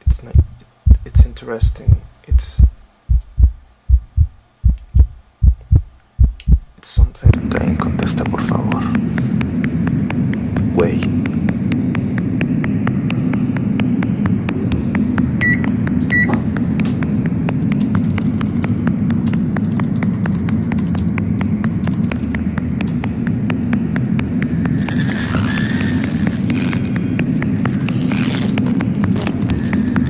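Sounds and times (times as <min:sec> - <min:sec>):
steady low rumble: 0:00.0 - 0:24.8
rapid keyboard typing: 0:17.4 - 0:23.1.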